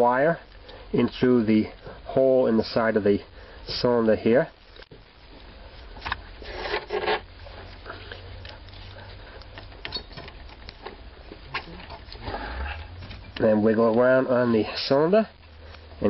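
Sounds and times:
wire clicking and scraping in lock: 9.4 - 10.9.

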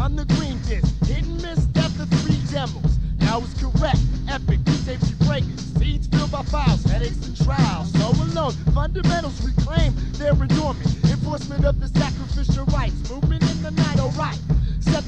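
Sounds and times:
heavy bass line: 0.0 - 15.0
rapping over a beat: 0.0 - 15.0.

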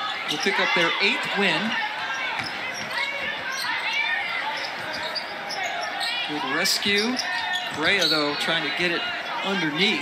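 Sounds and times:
sneakers squeaking: 0.1 - 10.0
basketball bouncing: 2.3 - 3.4.

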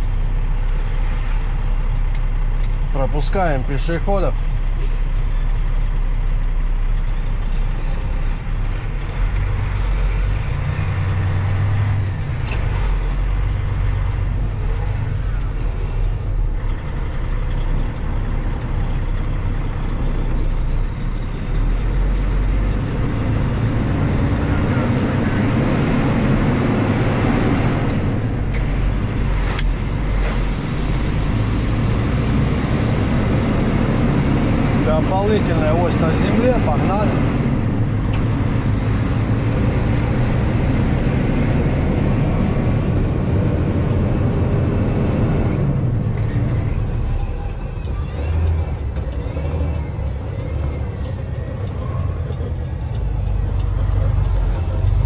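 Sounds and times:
diesel truck engine running: 0.0 - 55.0.

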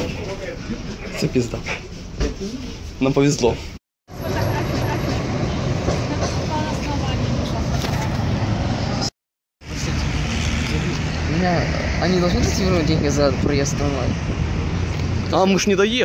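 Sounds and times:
voices: 0.0 - 8.5
street traffic noise: 0.0 - 16.0.

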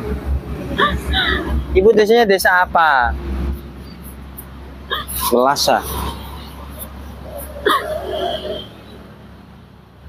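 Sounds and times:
woman whimpering: 0.8 - 1.5, 4.9 - 5.3
woman crying: 0.8 - 1.6, 4.9 - 5.4, 7.4 - 8.7.

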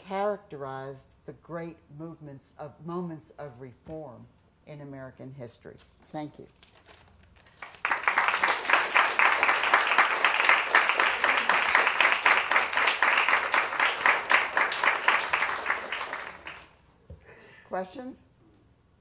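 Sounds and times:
audience applause: 7.6 - 16.8.

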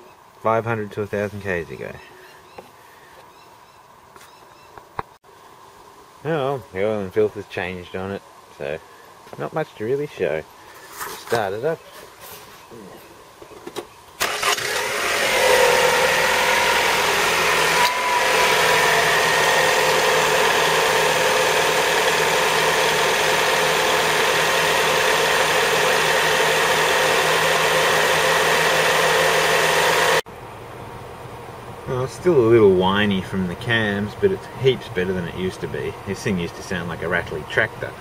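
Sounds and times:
car engine starting: 14.2 - 30.2
engine idling with whine: 14.2 - 38.0.

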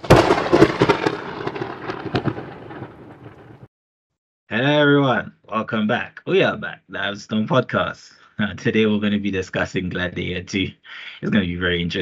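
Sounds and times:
thunder crack with crackling: 0.0 - 3.7.

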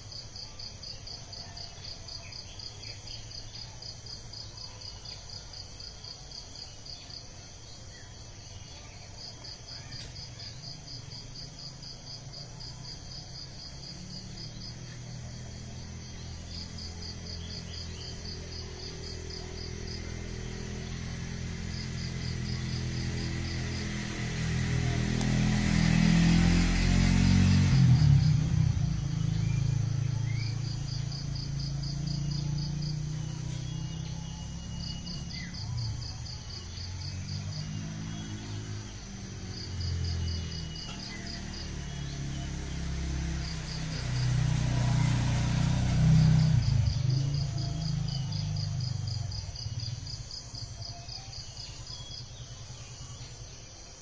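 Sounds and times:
insect chirping in rapid pulses: 0.0 - 54.0.

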